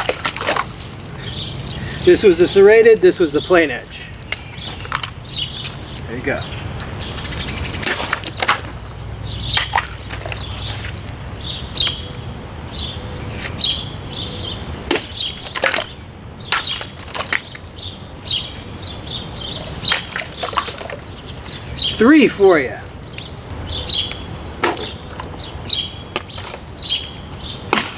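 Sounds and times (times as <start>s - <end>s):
birds chirping: 0.0s - 27.8s
insects buzzing: 0.0s - 27.9s.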